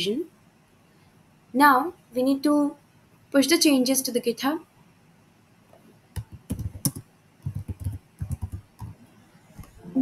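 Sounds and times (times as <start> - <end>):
typing on computer keyboard: 6.2 - 9.0.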